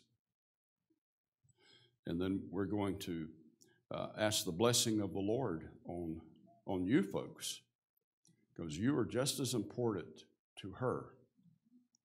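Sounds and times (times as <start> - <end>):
faint breath: 1.5 - 2.0.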